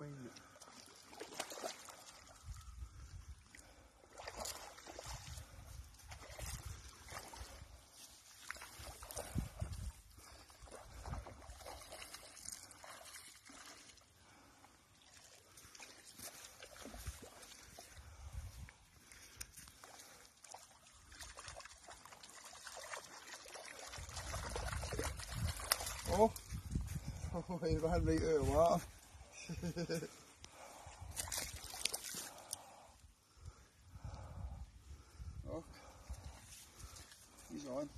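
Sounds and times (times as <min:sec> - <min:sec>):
water sloshing and dripping: 0:00.3 - 0:27.1, 0:30.5 - 0:32.7
wind rumbling on microphone: 0:02.3 - 0:03.5, 0:05.0 - 0:07.8, 0:08.7 - 0:11.8, 0:16.8 - 0:18.8, 0:23.8 - 0:29.9, 0:33.3 - 0:37.0.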